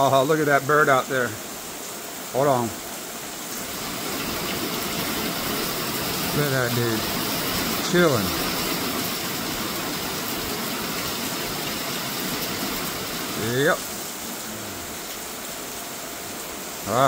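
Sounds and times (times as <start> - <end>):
heavy rain: 0.0 - 17.0.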